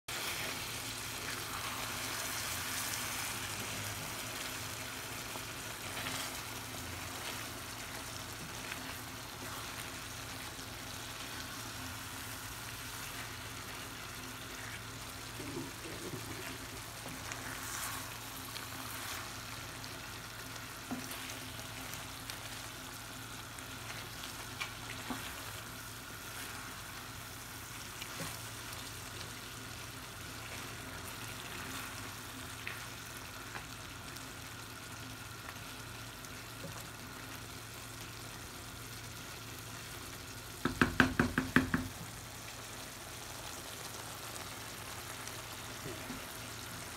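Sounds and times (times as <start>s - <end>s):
curry sizzling in a frying pan: 0.1s - 46.9s
wooden spoon stirring: 12.8s - 19.5s, 23.7s - 27.0s.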